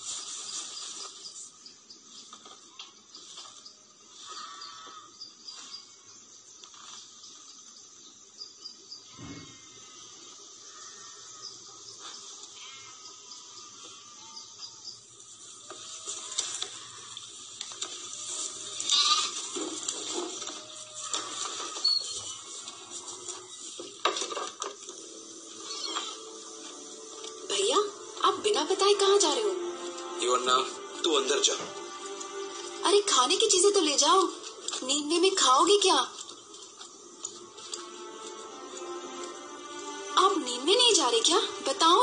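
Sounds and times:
livestock bleating: 16.0s - 17.2s, 18.7s - 19.6s, 25.6s - 26.2s.

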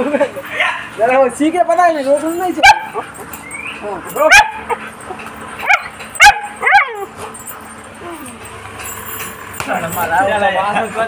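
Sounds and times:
puppy yelping: 2.6s - 7.4s.

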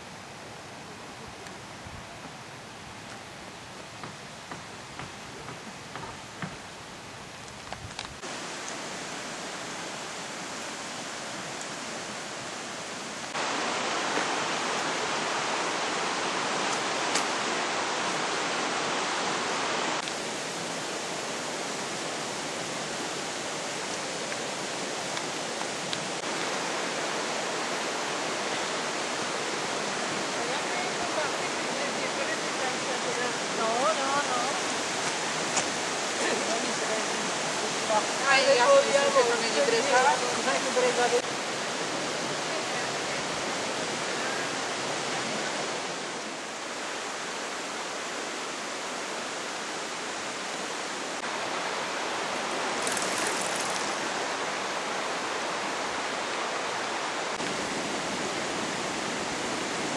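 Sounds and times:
rushing river water: 0.0s - 59.9s.

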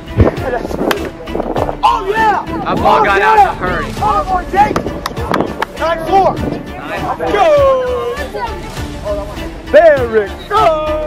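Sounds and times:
voices: 0.2s - 11.0s.

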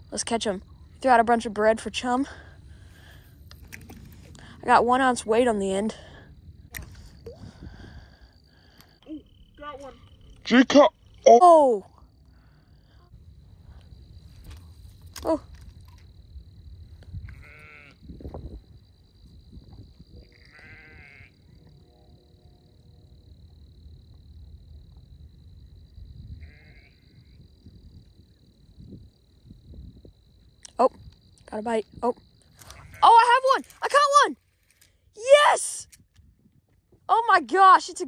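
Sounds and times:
low wind rumble: 0.0s - 33.8s
livestock bleating: 17.2s - 18.0s, 20.3s - 21.4s, 26.4s - 27.0s.

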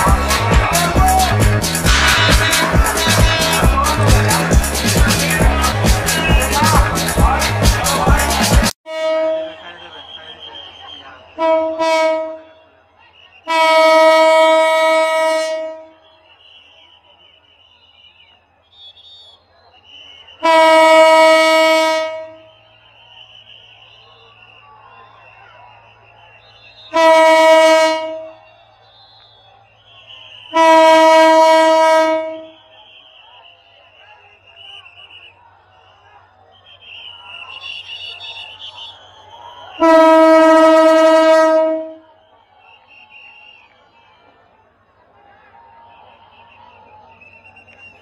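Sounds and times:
locomotive horn blast: 0.0s - 12.8s, 13.4s - 16.5s, 20.3s - 24.0s, 26.5s - 33.5s, 39.6s - 42.1s
faint crowd noise: 0.0s - 48.0s.

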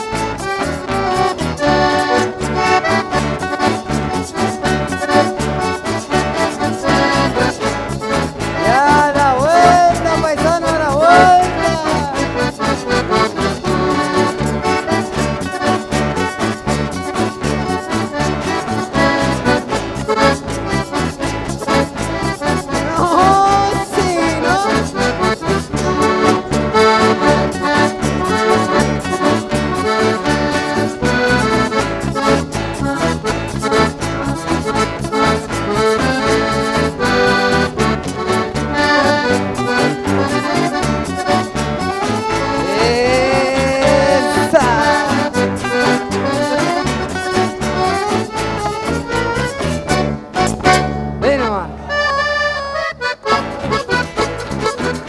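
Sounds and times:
accordion dance music with beat: 0.0s - 55.0s.

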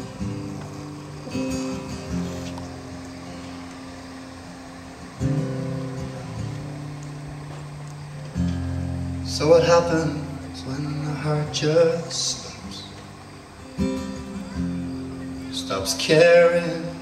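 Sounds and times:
acoustic guitar strummed chords: 0.0s - 17.0s.

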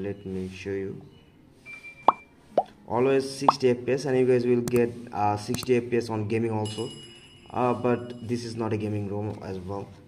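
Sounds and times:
short high beep: 1.7s - 2.3s
rising pop sound effects: 2.0s - 2.8s.

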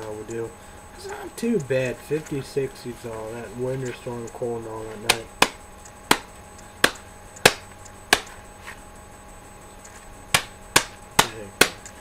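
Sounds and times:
sharp knocks or slaps: 5.0s - 8.4s, 10.3s - 11.9s.

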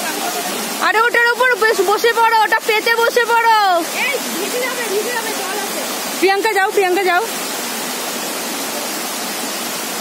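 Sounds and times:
waterfall rushing over rocks: 0.0s - 10.0s.

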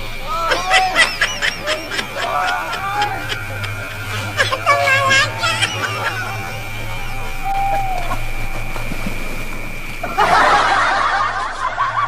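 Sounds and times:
thin high tone: 0.0s - 11.9s
low hum: 0.0s - 12.0s
burst of laughter: 0.3s - 8.3s, 10.0s - 12.0s.

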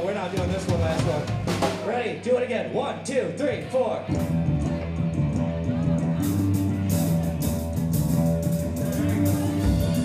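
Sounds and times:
electric guitars: 4.1s - 10.0s
drum kit hits: 7.9s - 10.0s.

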